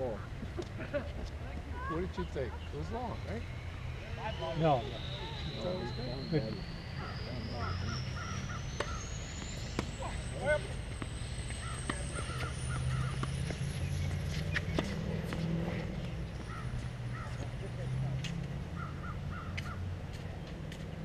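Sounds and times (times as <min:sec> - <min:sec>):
birds calling: 0:00.0 - 0:21.0
people laughing: 0:00.4 - 0:01.7
thin high whine rising in pitch: 0:01.9 - 0:16.9
tennis balls struck with rackets: 0:08.6 - 0:10.3, 0:10.9 - 0:17.6.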